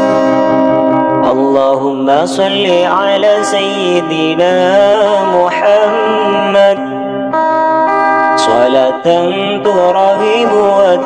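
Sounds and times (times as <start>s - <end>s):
acoustic accompaniment: 0.0s - 11.0s
person singing melismatic line: 1.2s - 7.3s.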